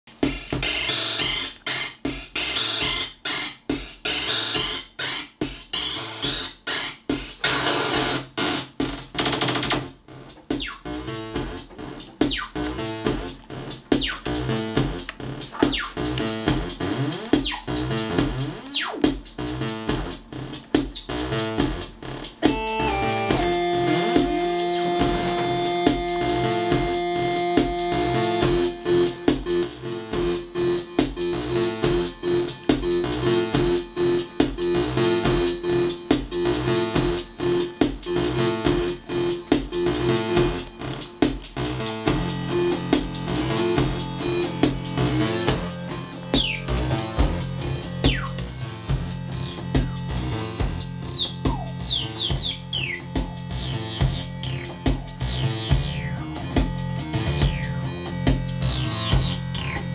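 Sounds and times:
synthesizer drum pattern: 0.1 - 59.9
synth pitch sweeping: 22.4 - 30.8, 45.5 - 49.4
held synth tone: 22.5 - 30.0.

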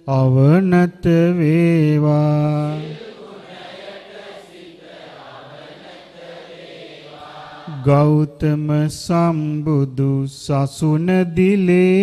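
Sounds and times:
person chanting into a microphone: 0.0 - 4.1, 6.4 - 12.0.

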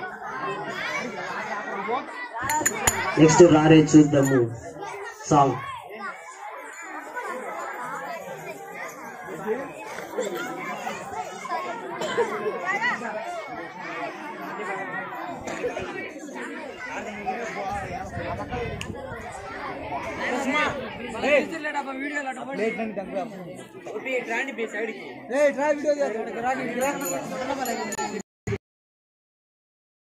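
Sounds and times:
crowd chatter: 0.0 - 28.6.

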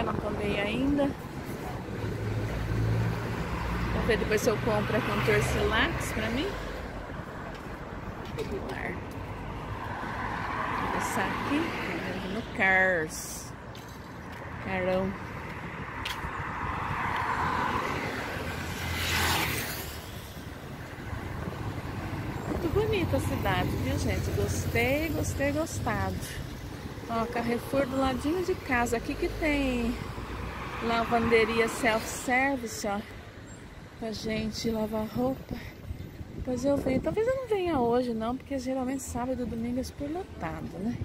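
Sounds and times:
cars driving past: 0.0 - 34.4
vehicle engine humming: 0.0 - 35.5.

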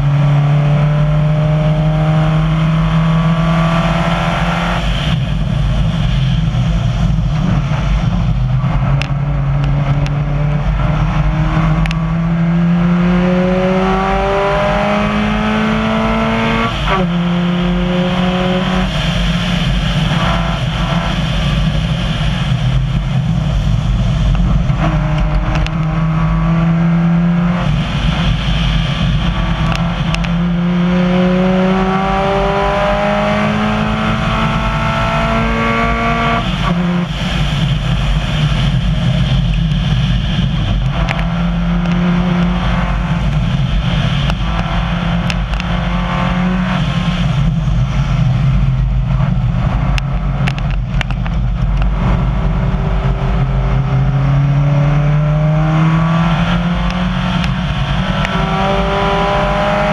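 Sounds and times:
car engine accelerating: 0.0 - 59.9
gravel under tyres: 36.2 - 59.9.

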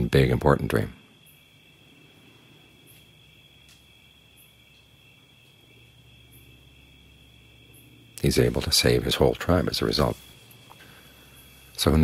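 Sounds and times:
crickets chirping: 0.0 - 12.0
low hum: 0.0 - 12.0.

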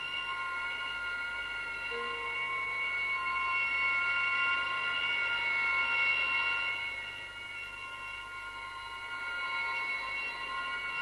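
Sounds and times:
high sustained drone: 0.0 - 11.0.

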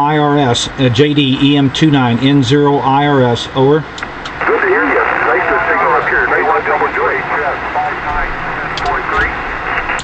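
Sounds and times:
steady radio band hiss: 0.0 - 10.0
thin narrow-band radio speech: 4.4 - 10.0.

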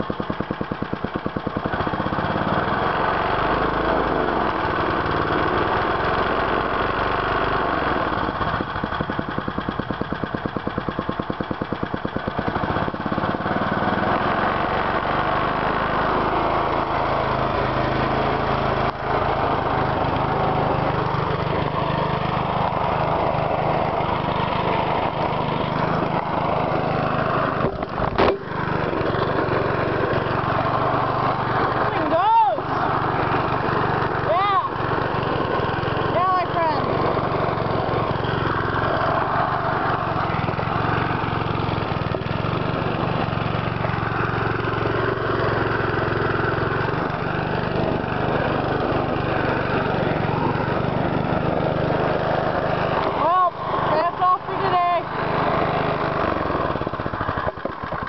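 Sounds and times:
lawn mower engine idling: 0.0 - 58.0.

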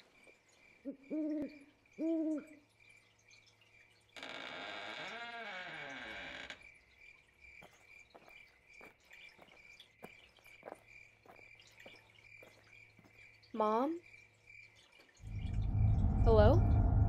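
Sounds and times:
crickets chirping: 5.1 - 17.0.

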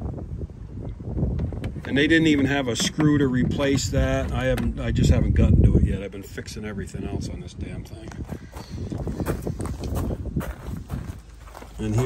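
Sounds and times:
footsteps on concrete: 8.1 - 12.0.

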